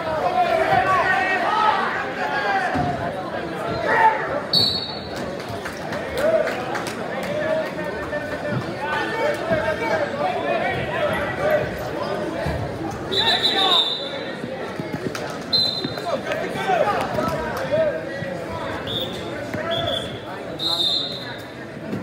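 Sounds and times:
coaches and spectators shouting: 0.0s - 5.1s, 6.0s - 14.8s, 15.5s - 21.6s
shrill referee whistle blasts: 4.5s - 5.0s, 13.1s - 14.2s, 15.5s - 16.0s, 18.8s - 21.4s.

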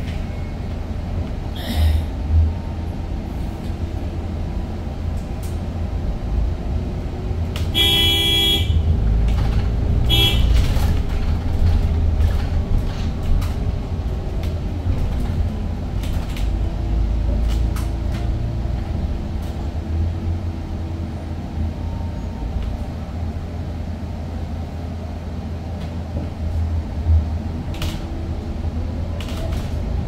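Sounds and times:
bus ride rumble: 0.0s - 30.0s
vehicle horn: 7.7s - 8.9s, 10.1s - 10.6s.

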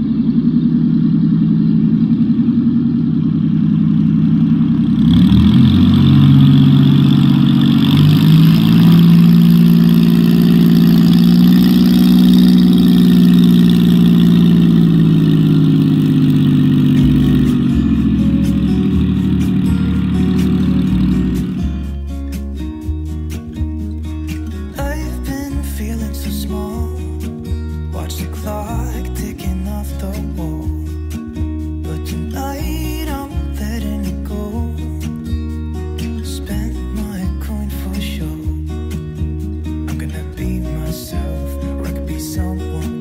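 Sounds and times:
propeller aircraft engine droning: 0.0s - 25.4s
music: 6.9s - 43.0s.

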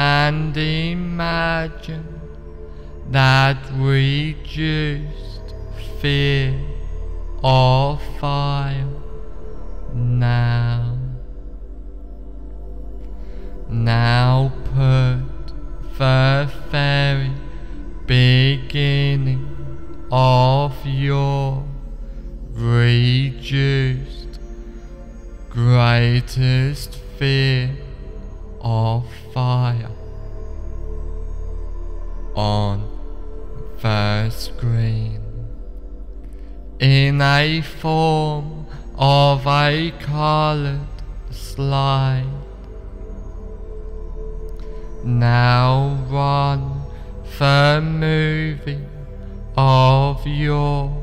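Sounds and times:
man chanting: 0.0s - 11.6s, 13.2s - 30.9s, 31.9s - 51.0s
low drone: 0.0s - 51.0s
low steady hum: 0.0s - 51.0s.

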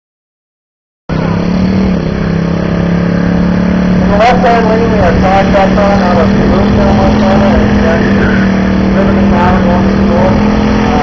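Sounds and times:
car engine at high revs: 1.1s - 11.0s.

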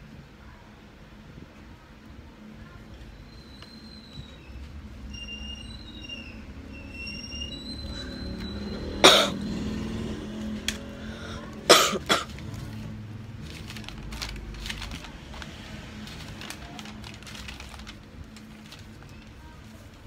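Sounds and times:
person coughing: 9.0s - 9.4s, 11.7s - 12.3s.

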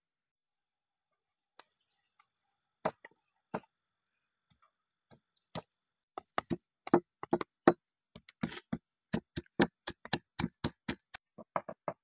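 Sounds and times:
knocks on wooden stump: 5.6s - 7.8s.

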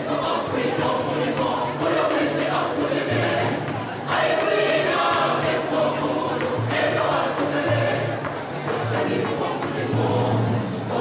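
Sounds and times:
choir singing gospel: 0.0s - 11.0s.

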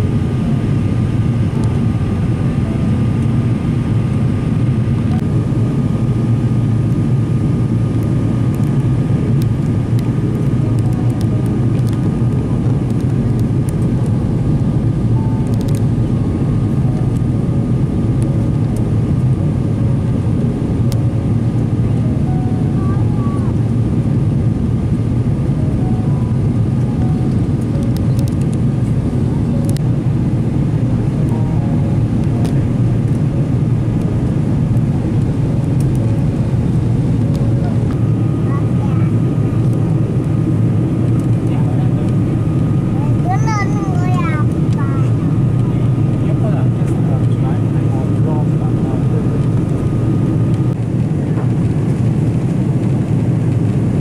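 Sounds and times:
jet engine and airflow rush: 0.0s - 54.0s.

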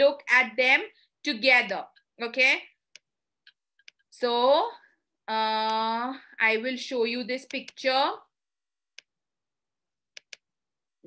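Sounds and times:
woman speaking: 0.0s - 2.8s, 4.1s - 8.3s.

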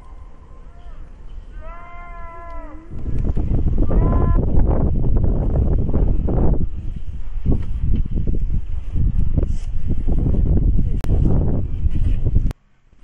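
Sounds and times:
wind gusting on microphone: 1.8s - 12.6s.

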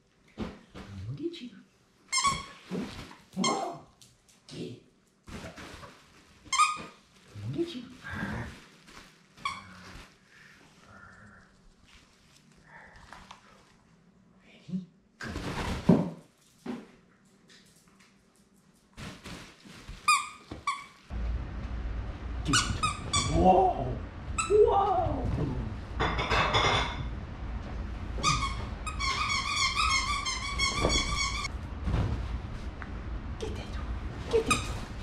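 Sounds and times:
loud thump and rustle: 31.8s - 32.7s.

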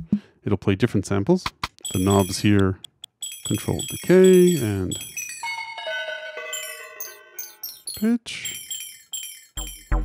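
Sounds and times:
chime-like synth notes: 1.9s - 2.5s, 3.2s - 10.0s.

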